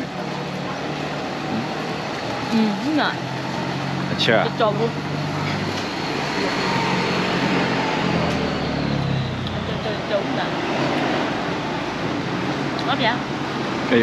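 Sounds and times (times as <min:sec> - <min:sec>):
road noise: 0:00.0 - 0:14.0
vehicle engine running: 0:00.0 - 0:14.0.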